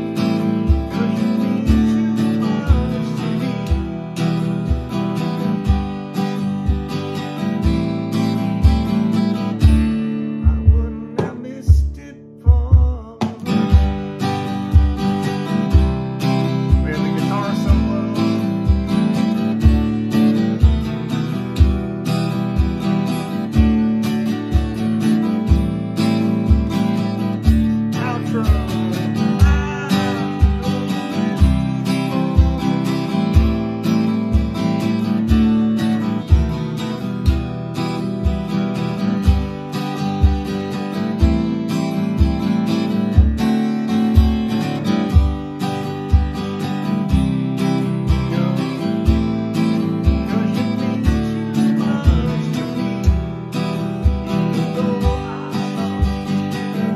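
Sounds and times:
acoustic guitar strumming: 0:00.0 - 0:56.9
stomp box thumps: 0:09.6 - 0:14.0.

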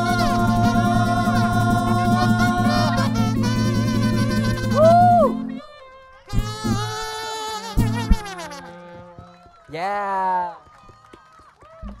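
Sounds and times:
band note sliding down: 0:00.0 - 0:05.3, 0:06.3 - 0:08.8
person shouting through pa: 0:09.7 - 0:10.6.

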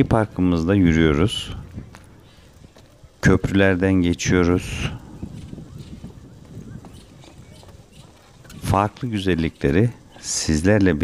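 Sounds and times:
footsteps on wooden planks: 0:01.7 - 0:03.0, 0:05.3 - 0:11.0.

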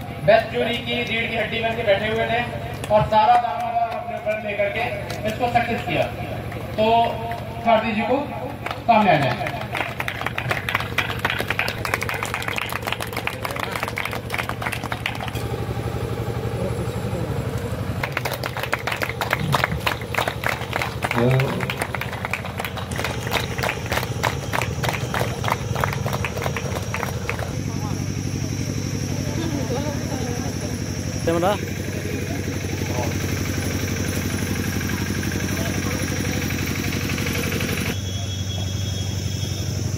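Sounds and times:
low engine drone: 0:00.0 - 0:39.9
group clapping: 0:00.4 - 0:15.5, 0:18.0 - 0:27.6.

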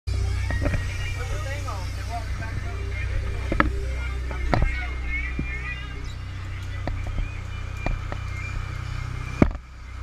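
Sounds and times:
boat engines droning: 0:00.1 - 0:10.0.

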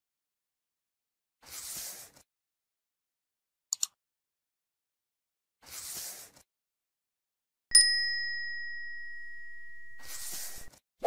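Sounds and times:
bright bell ding: 0:07.7 - 0:10.0.

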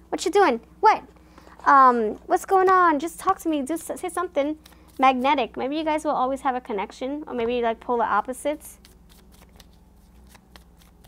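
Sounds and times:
cards being shuffled: 0:04.5 - 0:05.4, 0:08.7 - 0:11.0.

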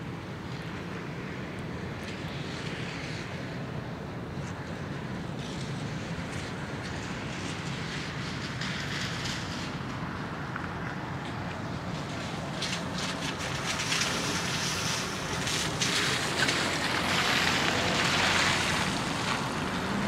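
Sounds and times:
low harbour rumble: 0:00.0 - 0:20.0
wind hiss: 0:00.4 - 0:20.0
faint crackles: 0:05.4 - 0:20.0.

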